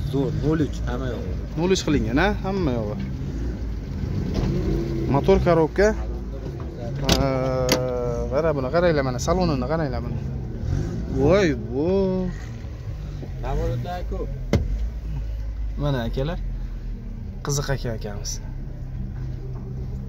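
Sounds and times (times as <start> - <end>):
men talking: 0.0 - 19.8.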